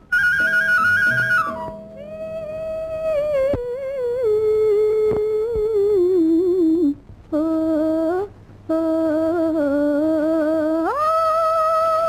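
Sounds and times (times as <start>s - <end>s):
person humming a melody: 0.4s - 12.0s.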